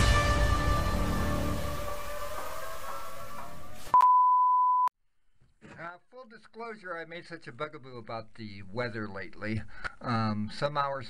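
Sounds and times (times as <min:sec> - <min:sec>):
background music: 0:00.0 - 0:04.0
electronic beep tone: 0:03.9 - 0:04.9.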